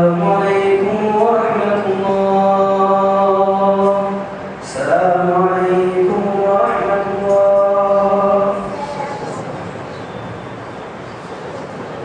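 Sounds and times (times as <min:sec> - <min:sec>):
man chanting: 0:00.0 - 0:09.2.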